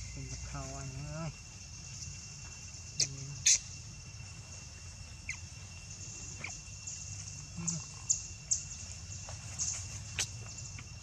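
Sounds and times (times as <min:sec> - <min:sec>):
insect drone: 0:00.0 - 0:11.0
high squeaks and chirps: 0:05.2 - 0:08.9.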